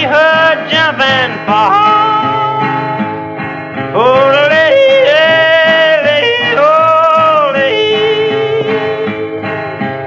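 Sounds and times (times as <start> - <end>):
man yodeling: 0.0 - 3.0, 4.0 - 9.3
strummed acoustic guitar: 0.0 - 10.0.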